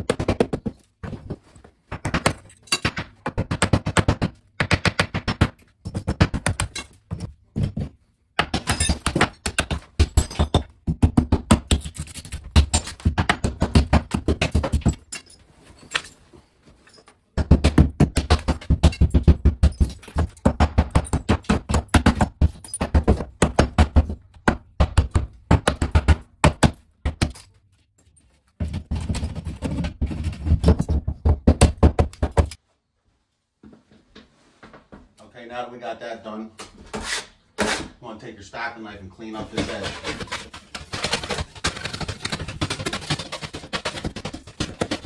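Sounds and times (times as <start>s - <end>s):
hammer smashing ceramic: 1.9s - 7.8s, 8.4s - 16.2s, 17.4s - 27.6s, 39.6s - 45.0s.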